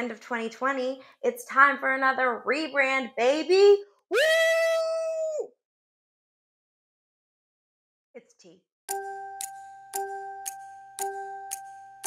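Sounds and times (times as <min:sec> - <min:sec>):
woman crying whee: 0:04.1 - 0:05.5.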